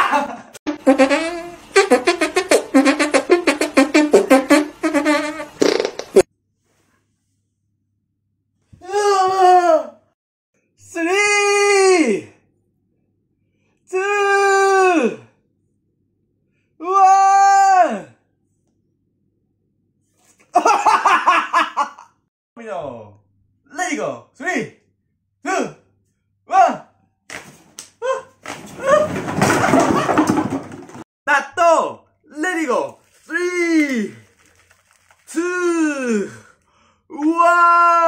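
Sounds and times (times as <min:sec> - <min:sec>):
man laughing loudly: 0:00.0 - 0:00.6, 0:20.5 - 0:22.1.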